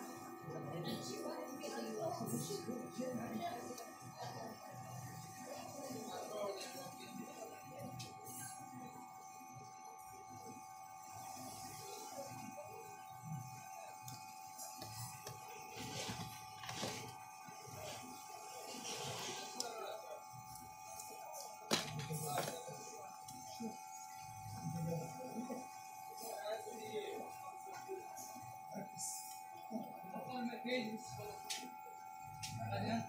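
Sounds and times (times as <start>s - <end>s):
high-pitched electronic whine: 0.0s - 33.0s.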